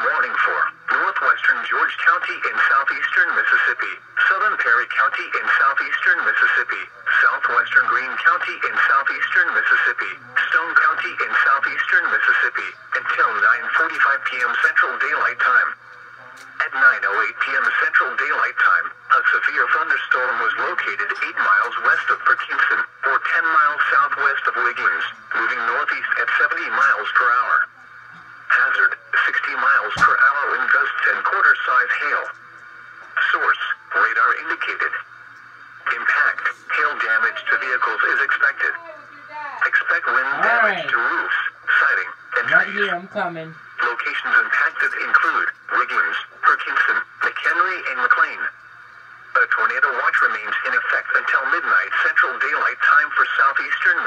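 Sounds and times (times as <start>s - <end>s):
voice through small speaker: 0.0s - 54.0s.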